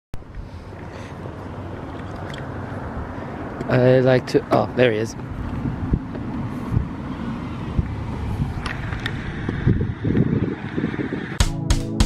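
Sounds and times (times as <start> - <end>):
car passing: 0.5 - 11.4.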